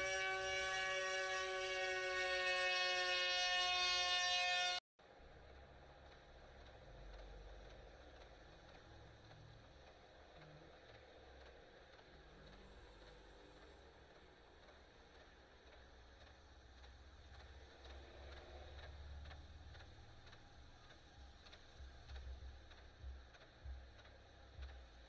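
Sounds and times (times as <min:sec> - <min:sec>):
train horn sounding a chord: 0:00.0 - 0:04.8
low rumble of snowplow: 0:05.0 - 0:25.0.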